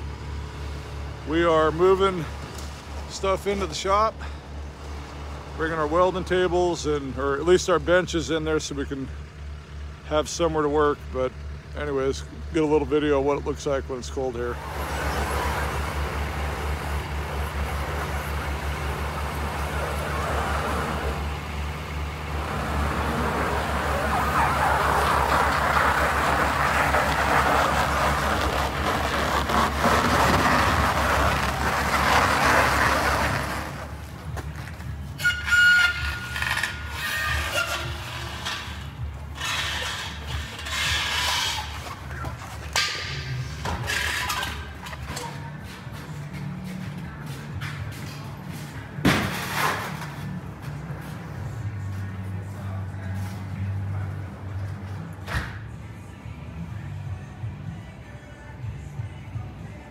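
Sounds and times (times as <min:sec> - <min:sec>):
diesel engine throbbing: 0:00.0 - 0:49.2
high squeak: 0:35.2 - 0:38.8.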